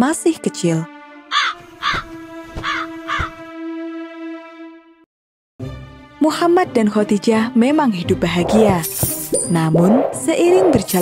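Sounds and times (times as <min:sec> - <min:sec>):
crow cawing: 0:01.3 - 0:03.5.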